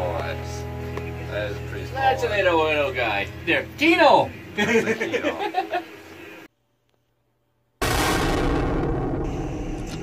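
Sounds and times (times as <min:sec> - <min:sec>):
loud boom: 0:07.8 - 0:10.0.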